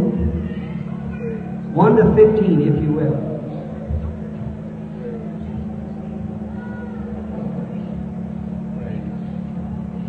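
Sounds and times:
congregation murmuring: 0.0s - 10.0s
tape recording hum: 0.0s - 10.0s.

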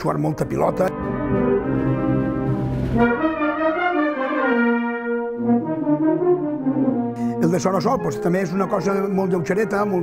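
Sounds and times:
brass band playing: 0.9s - 10.0s.

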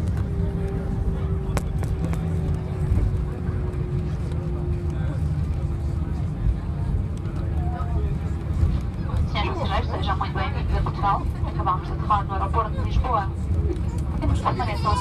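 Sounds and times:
deep rumble of wheels and engines: 0.0s - 15.0s
cabin announcement over speaker: 9.2s - 13.4s, 14.2s - 15.0s.

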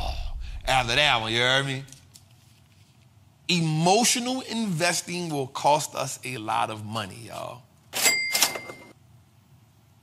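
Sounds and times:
metallic bell ding: 8.0s - 8.9s.

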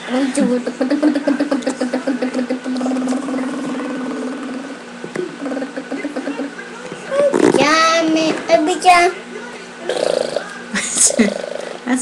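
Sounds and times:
child making buzzing engine sound: 0.1s - 6.5s, 7.1s - 8.0s.

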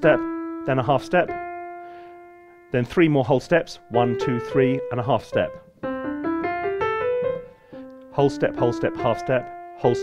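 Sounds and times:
low piano note: 0.0s - 10.0s
piano playing ascending scale: 0.0s - 10.0s.

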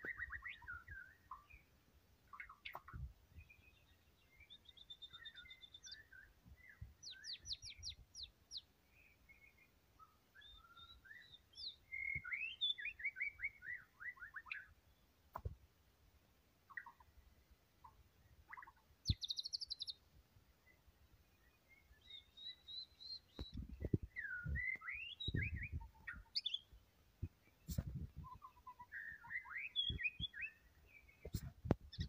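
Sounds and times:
bird singing: 0.0s - 15.2s, 16.6s - 17.2s, 17.8s - 32.0s.

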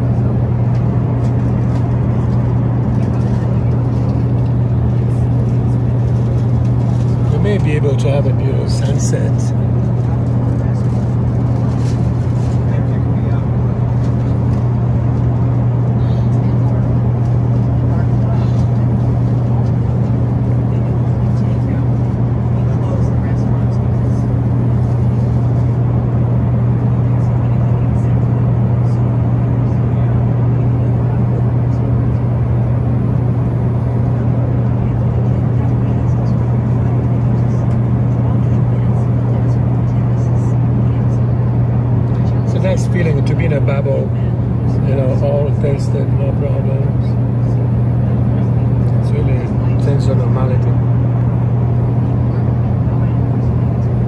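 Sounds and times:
airliner cabin drone: 0.0s - 54.0s.

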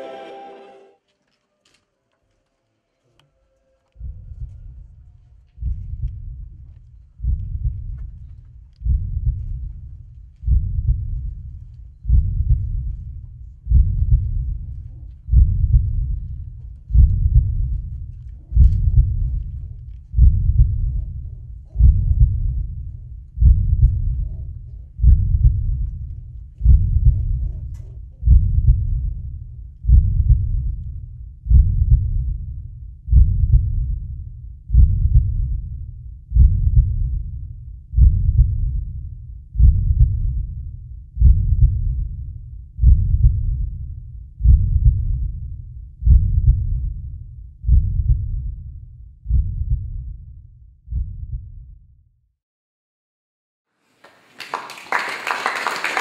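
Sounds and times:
slow deep beat: 5.6s - 51.8s.

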